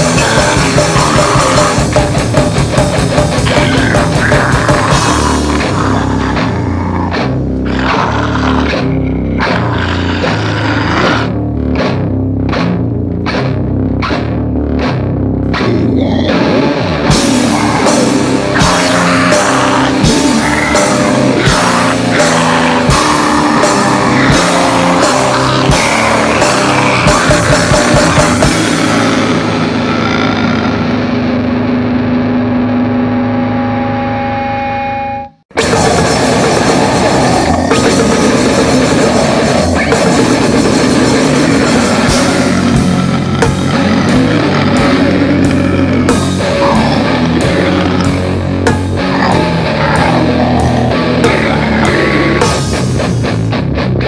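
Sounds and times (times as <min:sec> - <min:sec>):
distorted guitar and bass riff: 0:00.0 - 0:54.0.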